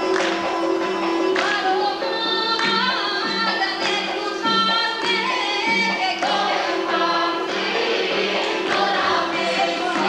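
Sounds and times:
chorus of voices singing: 5.3s - 10.0s.

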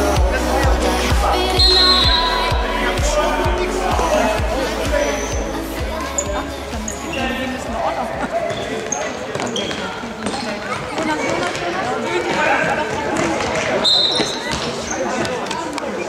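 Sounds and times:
shouting voices echoing: 0.0s - 15.6s
high-pitched shoe squeaks: 5.0s - 5.4s, 8.4s - 10.8s, 13.8s - 15.1s.

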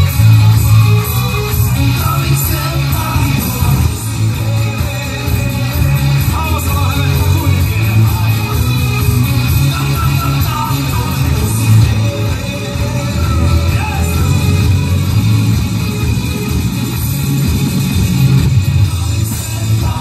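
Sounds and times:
live rock band playing loudly: 0.0s - 20.0s.

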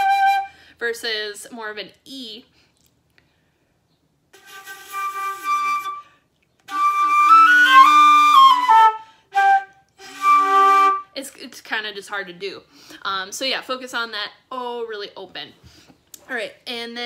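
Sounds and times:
flute notes: 0.0s - 0.6s, 4.4s - 11.1s.

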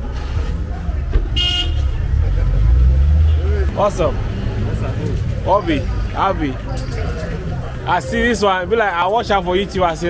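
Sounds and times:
low vehicle rumble: 0.0s - 8.0s
short high vehicle horn toot: 1.3s - 1.9s.

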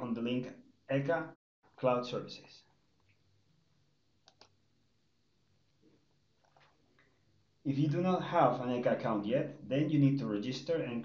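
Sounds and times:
computer mouse clicks: 4.2s - 4.6s.

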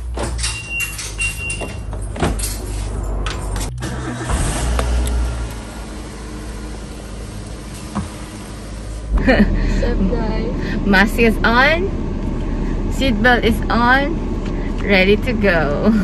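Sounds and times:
car engine cranking and idling: 1.8s - 16.0s.

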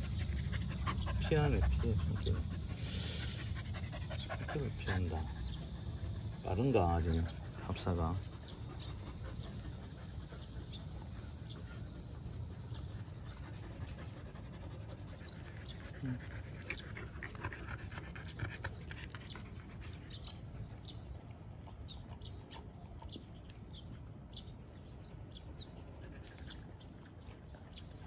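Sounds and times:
dogs panting and sniffing: 0.0s - 28.0s.

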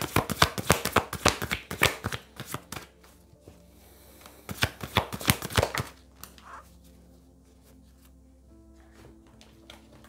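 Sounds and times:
cards being shuffled: 0.0s - 3.2s, 4.5s - 6.9s.

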